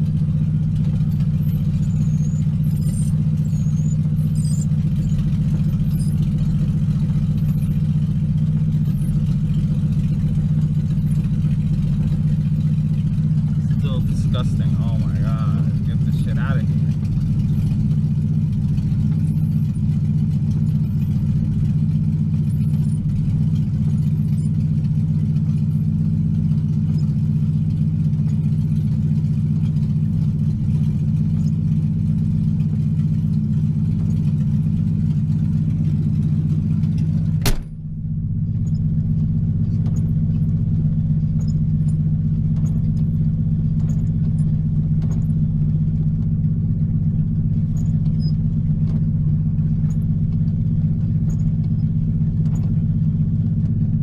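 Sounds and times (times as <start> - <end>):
car engine idling: 0.0 - 54.0
sharp click: 37.4 - 37.8.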